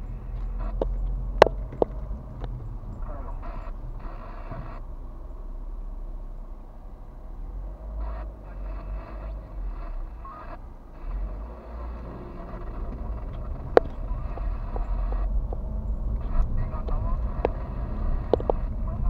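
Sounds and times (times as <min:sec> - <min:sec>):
car engine rumble inside cabin: 0:00.0 - 0:19.0.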